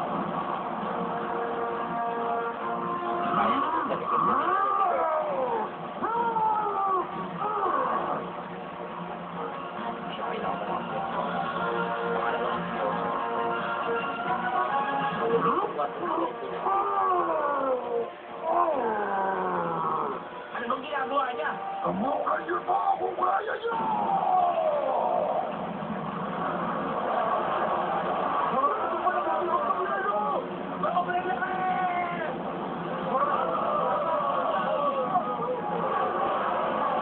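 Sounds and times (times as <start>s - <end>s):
wailing sounds: 2.9s - 8.4s, 16.3s - 20.5s, 23.6s - 25.6s, 33.1s - 37.0s.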